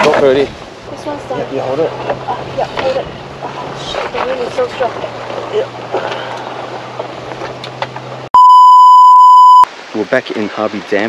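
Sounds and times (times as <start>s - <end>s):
steady test-tone beep: 8.4s - 9.7s.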